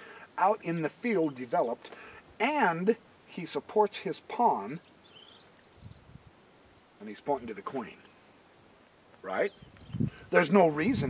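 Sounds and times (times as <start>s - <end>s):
faint high chirp: 4.8s - 6.0s.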